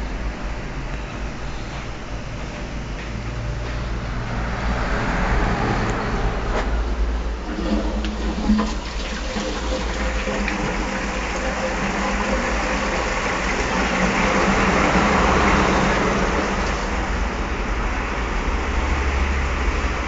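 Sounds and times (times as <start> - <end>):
toilet flushing: 7.3 - 18.7.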